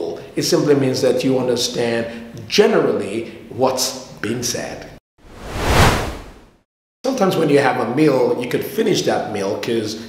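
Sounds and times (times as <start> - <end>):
whoosh sound effect: 5.3 - 6.5.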